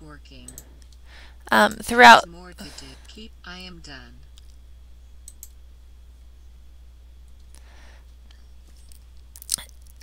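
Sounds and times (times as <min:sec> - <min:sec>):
low steady hum: 0:00.0 - 0:10.0
computer mouse clicking: 0:05.2 - 0:05.6.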